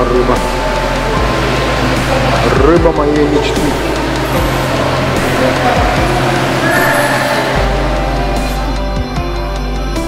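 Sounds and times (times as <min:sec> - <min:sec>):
faint voices: 0:00.0 - 0:08.8
loud steady low hum: 0:00.0 - 0:09.1
music: 0:00.0 - 0:10.0.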